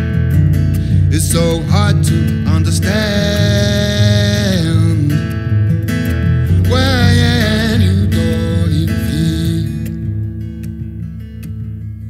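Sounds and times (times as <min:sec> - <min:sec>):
acoustic guitar strumming: 0:00.0 - 0:12.0
electric bass guitar: 0:00.0 - 0:12.0
man singing wordless note: 0:01.1 - 0:05.2, 0:06.5 - 0:10.0.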